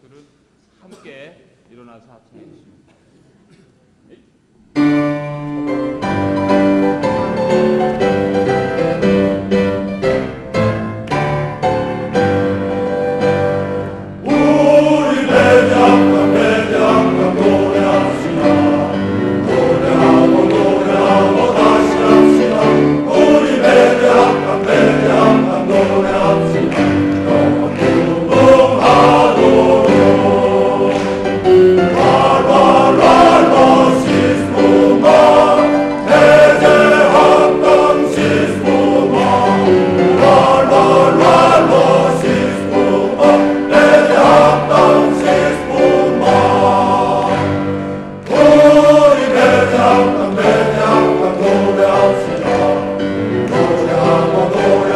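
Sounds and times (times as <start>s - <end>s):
piano accompaniment: 4.7s - 54.9s
men's choir singing: 13.4s - 54.9s.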